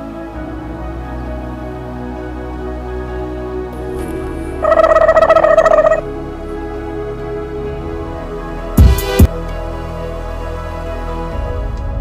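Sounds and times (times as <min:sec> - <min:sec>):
background music: 0:00.0 - 0:12.0
chattering bird call: 0:04.6 - 0:06.0.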